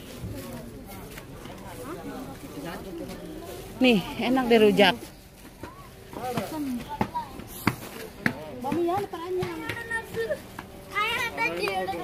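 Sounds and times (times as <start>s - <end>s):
children's voices: 8.7s - 12.0s.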